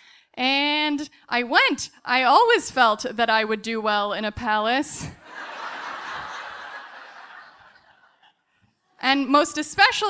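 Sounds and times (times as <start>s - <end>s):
audience laughing: 5.2s - 8.4s.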